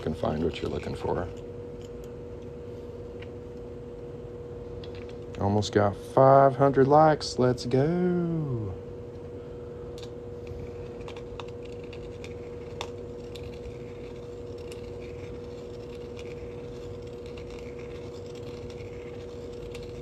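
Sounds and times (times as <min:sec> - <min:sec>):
steady electrical hum: 0:00.0 - 0:20.0.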